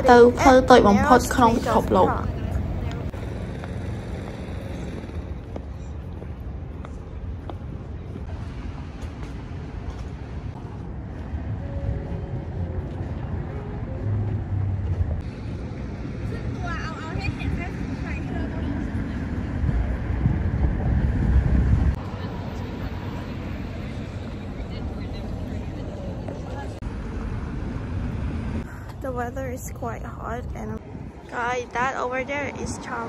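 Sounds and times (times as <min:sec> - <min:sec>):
traffic rumble: 0:00.0 - 0:33.0
wind on microphone: 0:09.6 - 0:22.1, 0:28.0 - 0:33.0.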